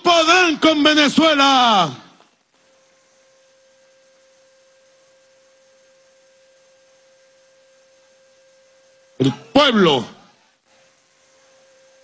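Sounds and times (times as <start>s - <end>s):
faint steady electronic tone: 0.0s - 12.0s.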